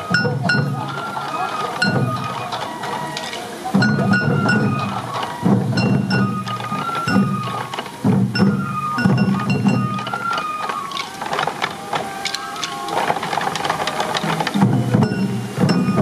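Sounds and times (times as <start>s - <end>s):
bamboo flutes melody: 0.0s - 16.0s
taiko drums beating: 0.0s - 16.0s.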